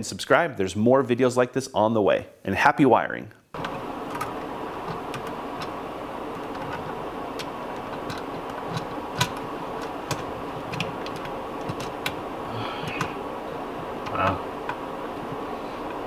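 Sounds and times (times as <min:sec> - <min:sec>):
steady hiss of room noise: 0:00.0 - 0:16.0
clicks and taps of handling wires: 0:06.4 - 0:12.2.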